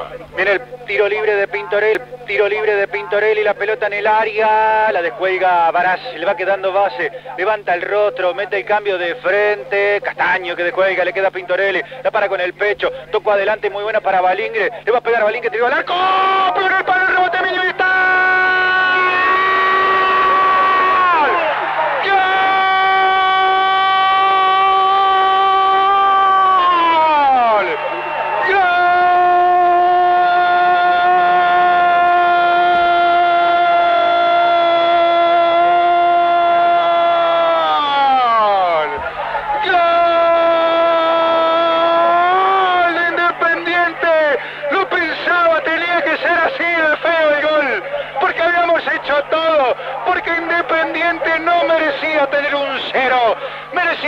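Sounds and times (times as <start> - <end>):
man shouting drawn-out goal call: 15.6 - 54.0.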